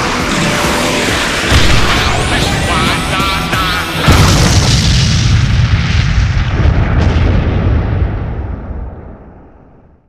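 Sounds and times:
cartoon explosion boom: 4.0 - 9.4.

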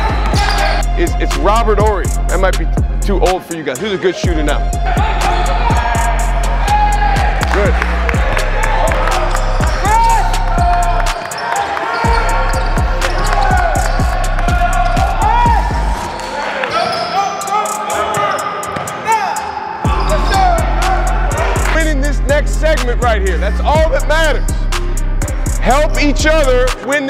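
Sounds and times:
sneakers squeaking: 0.0 - 0.9, 3.8 - 21.7
hip-hop music with heavy bass: 0.0 - 16.6, 17.2 - 27.0.

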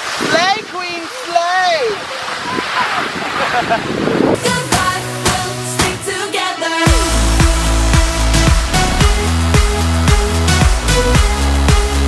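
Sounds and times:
woman's wordless exclamations: 0.4 - 2.0.

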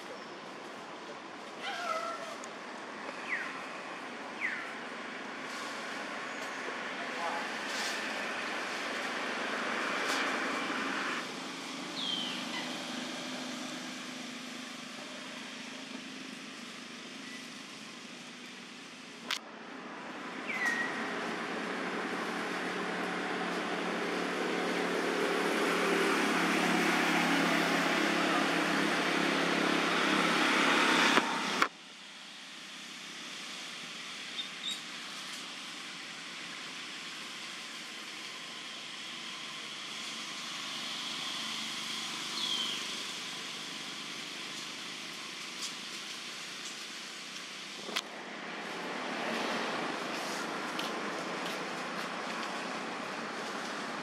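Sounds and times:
outdoor background: 0.0 - 54.0
motor vehicle running: 2.9 - 31.7, 32.8 - 54.0.

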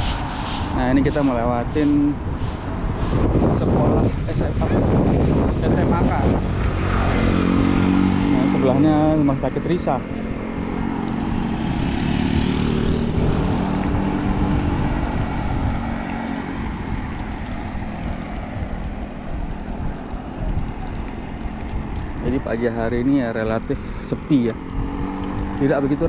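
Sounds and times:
road noise: 0.0 - 26.0
traffic engine hum: 0.0 - 26.0
wind buffeting microphone: 0.0 - 26.0.

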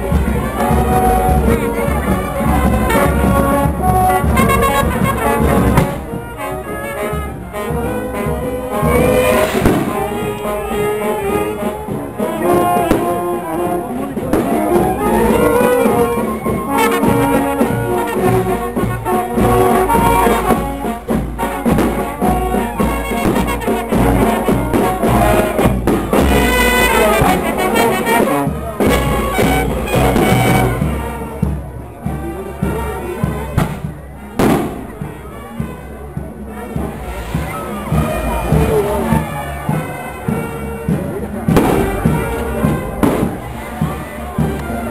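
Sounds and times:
brass band playing: 0.0 - 44.9
procession music with drumbeat: 0.0 - 44.9
voices: 0.0 - 44.9
firecracker bang: 5.5 - 6.2, 8.7 - 11.4, 33.6 - 35.0, 36.4 - 39.9, 41.5 - 44.0
sharp crack: 9.2 - 10.5.

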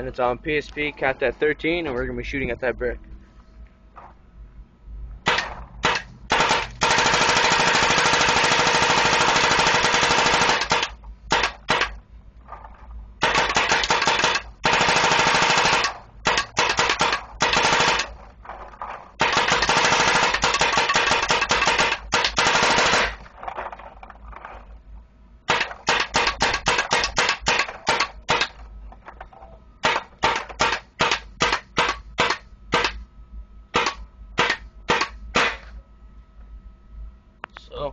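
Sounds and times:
paintball marker firing rapidly: 5.3 - 12.0, 13.2 - 18.1.

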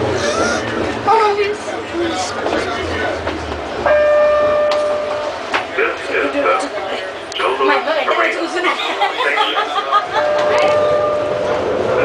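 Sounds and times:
faint voices: 0.0 - 3.9, 5.1 - 12.0
train car low rumble: 0.0 - 12.0.

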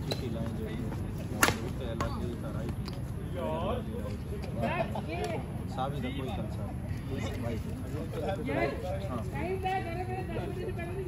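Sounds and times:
racket striking shuttlecock: 1.4 - 1.8.

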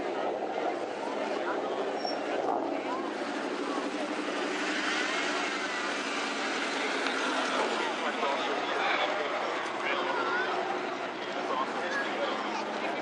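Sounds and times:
engine drone: 0.0 - 13.0
people talking: 0.0 - 13.0.

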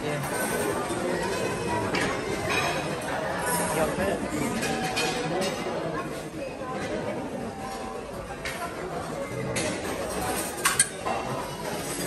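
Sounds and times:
dining room murmur: 0.0 - 12.0
metal utensil clinking on tray: 10.2 - 11.1.

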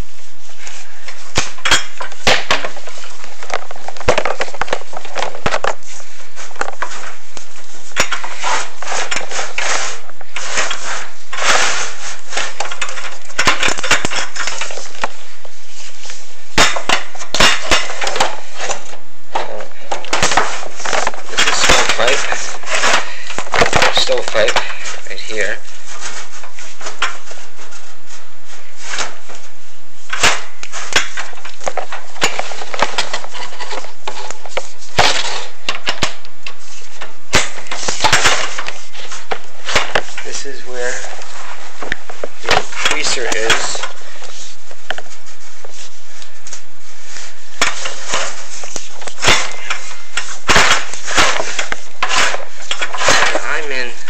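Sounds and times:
rod scraping inside metal flue: 6.0 - 15.1, 19.7 - 29.3, 46.2 - 54.0.

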